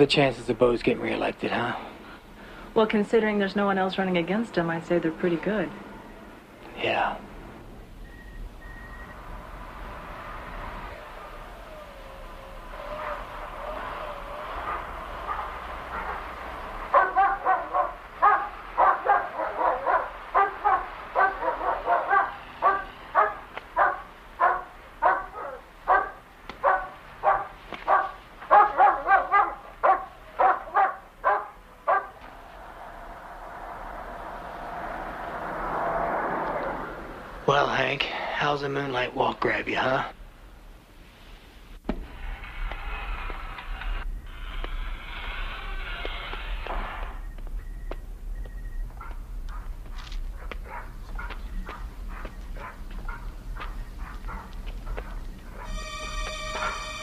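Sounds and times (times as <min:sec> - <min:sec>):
truck engine rumble: 0:01.9 - 0:28.6, 0:31.1 - 0:38.7
dog barking: 0:12.7 - 0:32.3, 0:49.0 - 0:55.8.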